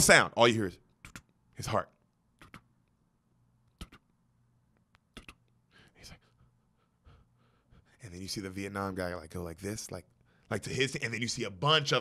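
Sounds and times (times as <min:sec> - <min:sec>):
man breathing faintly: 0:05.6 - 0:08.1.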